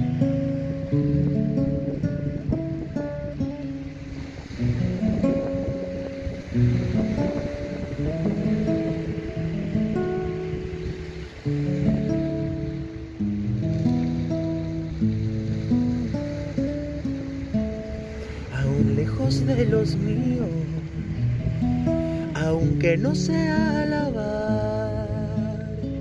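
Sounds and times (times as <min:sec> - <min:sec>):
acoustic guitar playing: 0:00.0 - 0:26.0
background hiss: 0:00.0 - 0:26.0.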